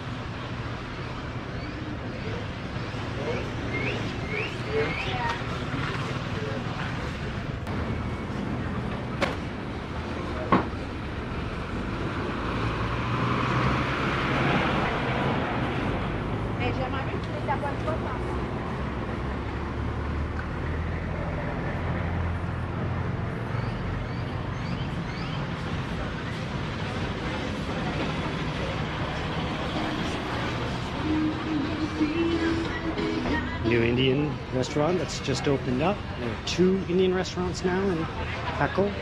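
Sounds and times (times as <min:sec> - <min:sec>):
vehicles passing: 0:00.0 - 0:39.0
people's voices: 0:01.7 - 0:07.7, 0:14.3 - 0:18.5, 0:26.0 - 0:39.0.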